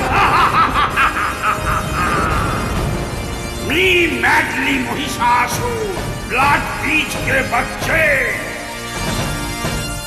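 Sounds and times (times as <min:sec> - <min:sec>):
demon character laughing: 0:00.0 - 0:02.8
background music: 0:00.0 - 0:10.0.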